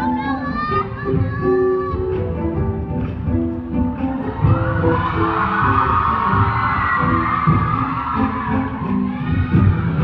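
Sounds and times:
live band music: 0.0s - 10.0s
crowd cheering and screaming: 4.2s - 10.0s.

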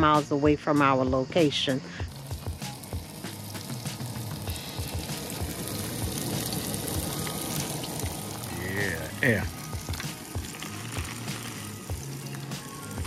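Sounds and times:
peppers sizzling in a frying pan: 1.5s - 13.0s
small crackles and pops: 2.1s - 13.0s.

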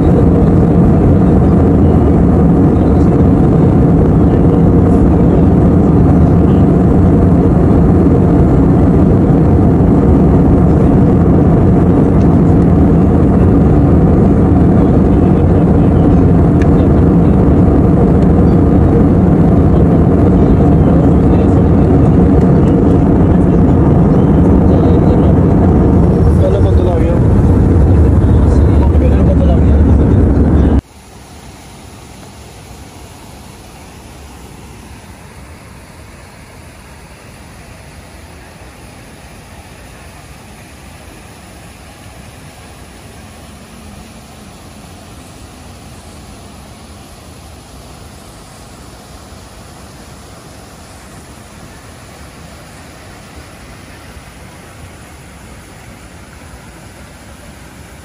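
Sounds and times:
jet airliner cabin noise: 0.0s - 58.0s.

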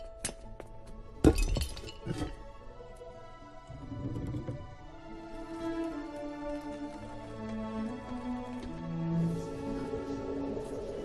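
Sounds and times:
soft sustained music: 0.0s - 11.0s.

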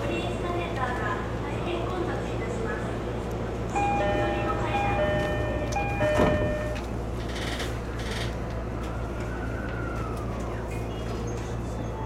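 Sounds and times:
electric train rumbling on track: 0.0s - 12.0s
electronic chime: 3.8s - 6.8s.

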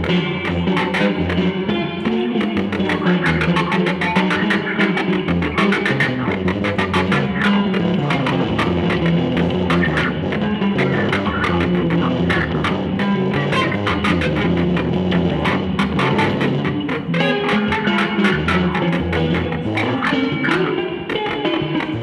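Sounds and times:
electric guitars playing samba: 0.0s - 22.0s.

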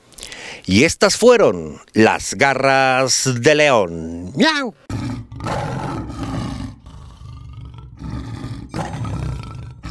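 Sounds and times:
lion roaring and growling: 4.9s - 9.9s.

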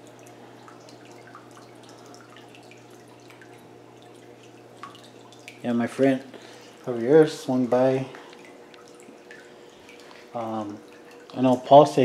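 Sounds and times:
faint steady hum: 0.0s - 12.0s
water drips: 0.0s - 12.0s.

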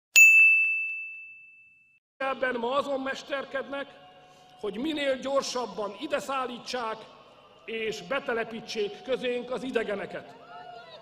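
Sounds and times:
metallic ding ringing: 0.2s - 2.0s.

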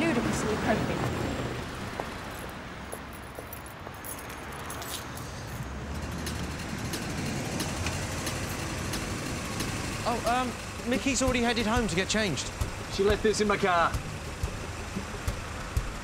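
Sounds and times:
passing cars and trucks: 0.0s - 16.0s.

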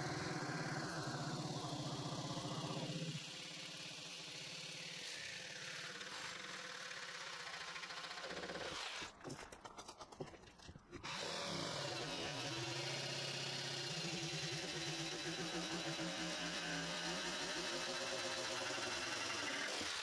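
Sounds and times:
jigsaw cutting board: 0.0s - 20.0s.

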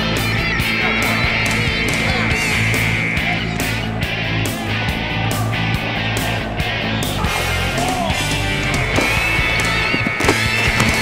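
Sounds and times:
rock music: 0.0s - 11.0s.

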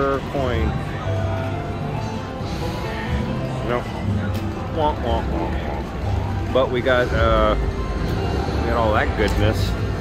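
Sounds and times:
casino floor hum and din: 0.0s - 10.0s
slot machine music: 0.0s - 10.0s.

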